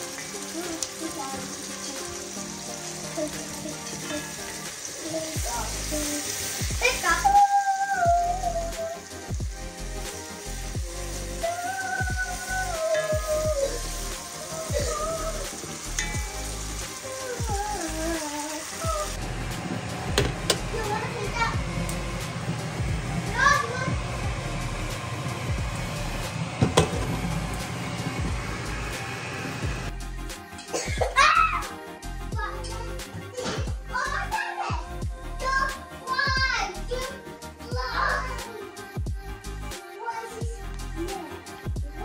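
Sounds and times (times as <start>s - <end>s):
food sizzling in a pot: 0.0s - 30.0s
background music: 0.0s - 42.0s.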